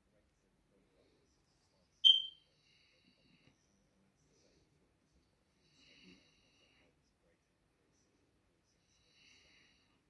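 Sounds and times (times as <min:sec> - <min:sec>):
short high-pitched beep: 0:02.0 - 0:02.3.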